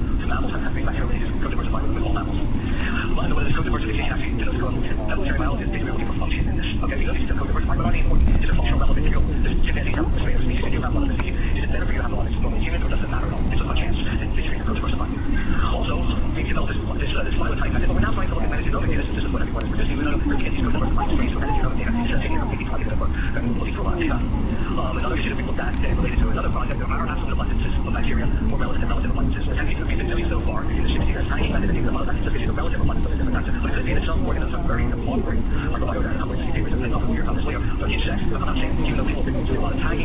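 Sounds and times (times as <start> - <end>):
indistinct voices talking: 0.0 - 40.0
low vehicle rumble: 0.0 - 40.0.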